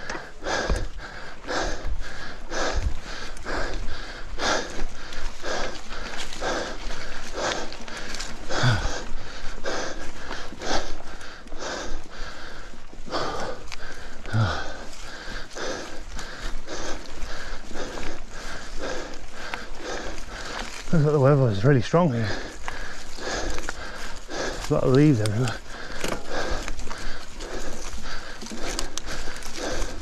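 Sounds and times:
cyclist breathing hard: 0.0s - 30.0s.

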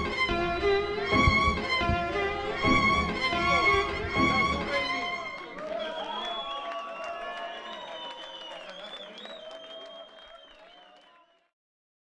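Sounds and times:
audience applauding: 2.6s - 11.5s.

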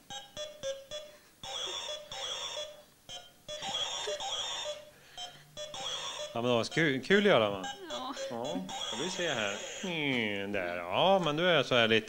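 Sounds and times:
electronic buzzing tones: 0.0s - 10.1s.

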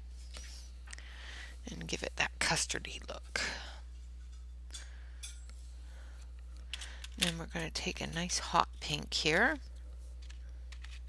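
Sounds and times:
steady low hum: 0.0s - 11.0s
woman speaking: 1.6s - 3.8s, 7.2s - 9.6s.

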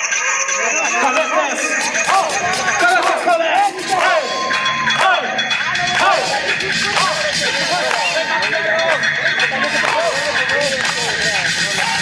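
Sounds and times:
crowd shouting and whooping: 0.0s - 12.0s
hip-hop music with steady beat: 0.0s - 12.0s.

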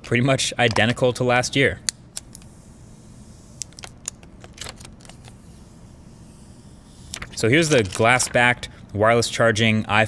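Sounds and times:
plastic film peeling crackles: 7.0s - 8.4s.

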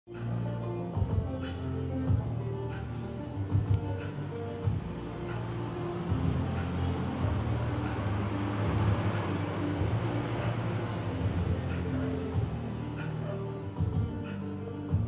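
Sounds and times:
background music with bass line: 0.1s - 15.0s.

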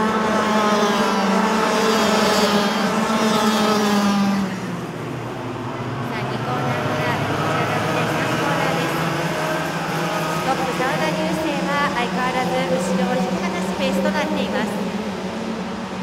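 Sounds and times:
racing kart engines buzzing: 0.0s - 16.0s.

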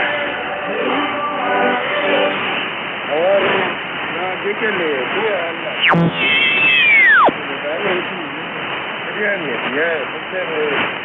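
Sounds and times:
radio static: 5.6s - 7.4s
whistling heterodyne tone: 6.7s - 7.3s.

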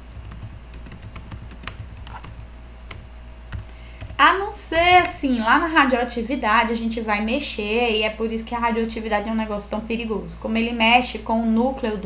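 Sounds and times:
keyboard typing clicks: 0.1s - 4.2s.

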